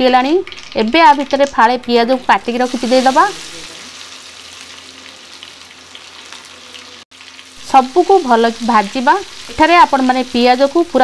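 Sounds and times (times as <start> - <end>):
onion sizzling in hot oil: 0.0 - 11.0.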